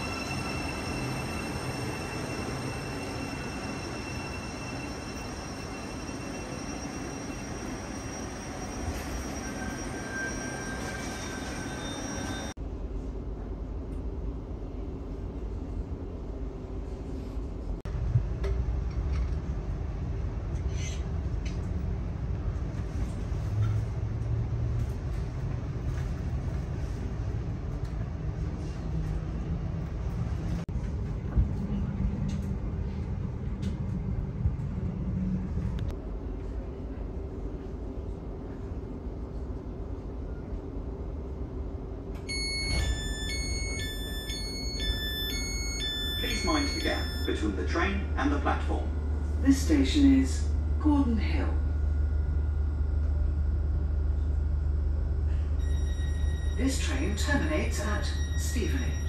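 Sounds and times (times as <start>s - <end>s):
electronic chime tones: 0.0s - 12.5s, 42.3s - 47.5s.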